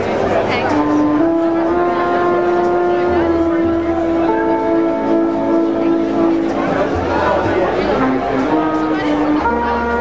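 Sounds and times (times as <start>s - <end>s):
quiet jazz band accompaniment: 0.0s - 10.0s
trumpet playing slow melody: 0.6s - 7.0s, 7.8s - 10.0s.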